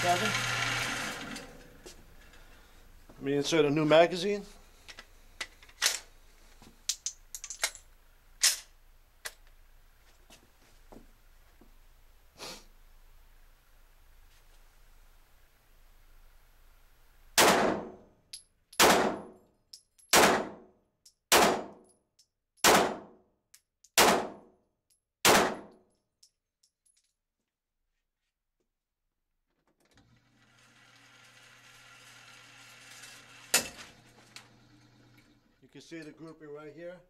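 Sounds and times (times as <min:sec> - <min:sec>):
electric motor hum: 0:00.0 - 0:02.0
pistol shots echoing indoors: 0:17.4 - 0:18.1, 0:18.8 - 0:19.4, 0:20.1 - 0:20.7, 0:21.3 - 0:21.8, 0:22.6 - 0:23.2, 0:24.0 - 0:24.5, 0:25.2 - 0:25.8.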